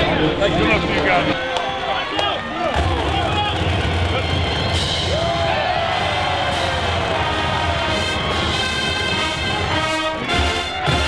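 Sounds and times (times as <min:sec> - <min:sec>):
marching band music: 0:00.0 - 0:11.0
stadium crowd noise: 0:00.0 - 0:11.0.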